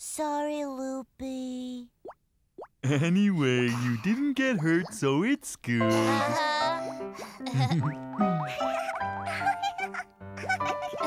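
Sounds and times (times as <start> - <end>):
rising cartoon bloops: 7.6 - 9.2.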